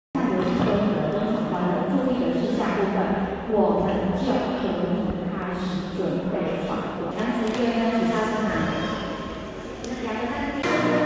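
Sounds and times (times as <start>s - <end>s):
children chattering: 7.2s - 11.0s.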